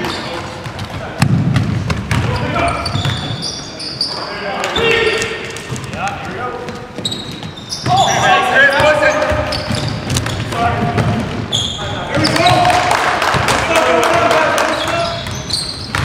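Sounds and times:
basketball bouncing: 0.6 - 3.3, 8.7 - 11.5, 15.1 - 16.0
sneaker squeaks: 1.6 - 6.0, 6.6 - 12.6, 14.6 - 16.0
players shouting: 7.7 - 9.6, 11.8 - 15.3.

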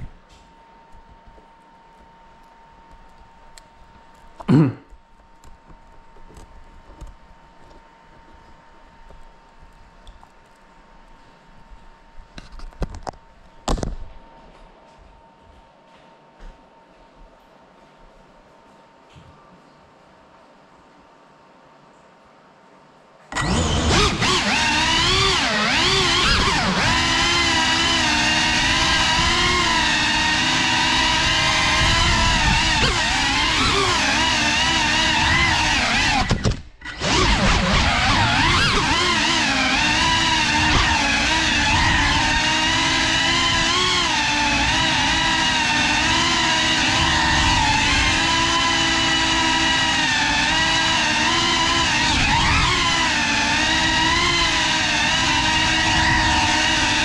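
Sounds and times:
drone motors buzzing: 23.3 - 57.0.

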